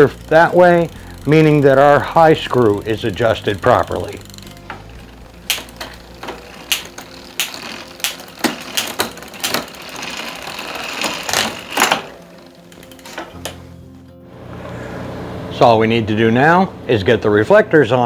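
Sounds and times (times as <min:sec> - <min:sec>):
bicycle chain whirring: 0:00.0 - 0:13.8.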